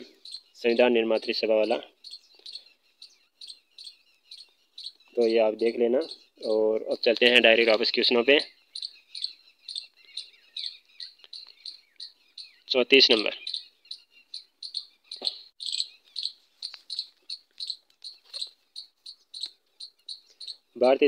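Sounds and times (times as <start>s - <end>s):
bird chirping: 0.0s - 21.0s.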